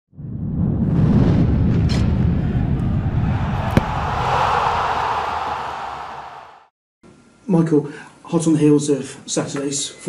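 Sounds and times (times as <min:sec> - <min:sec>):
rushing whoosh: 0:00.8 - 0:06.7.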